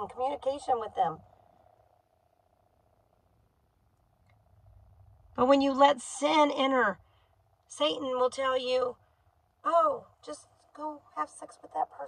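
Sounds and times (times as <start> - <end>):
faint steady car hum: 0.0 - 12.0.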